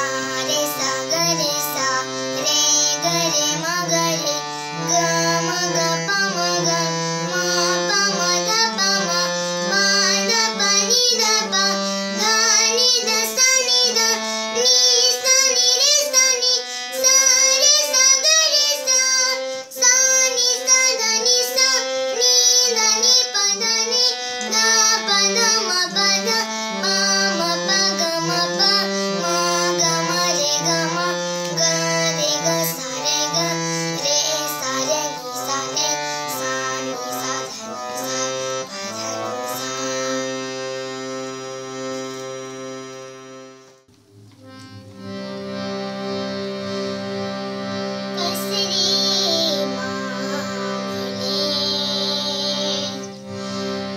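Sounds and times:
girl singing: 0:00.0 - 0:40.3, 0:48.0 - 0:53.2
harmonium sustained notes: 0:00.0 - 0:53.9.

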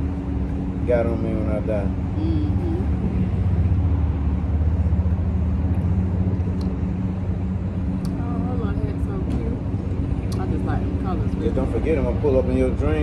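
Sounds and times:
low mechanical hum: 0:00.0 - 0:13.0
outdoor street ambience: 0:00.0 - 0:13.0.

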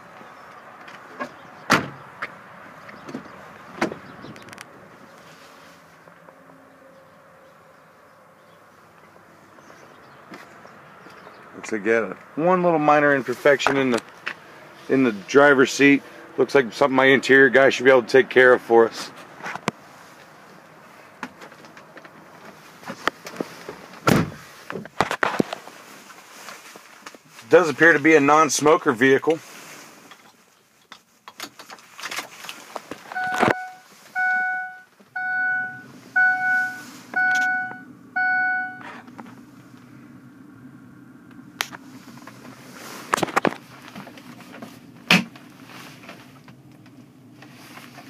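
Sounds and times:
knocks and clicks of truck doors: 0:01.2 - 0:02.3, 0:03.0 - 0:04.4
loud thump: 0:01.7 - 0:02.0, 0:24.0 - 0:24.4.

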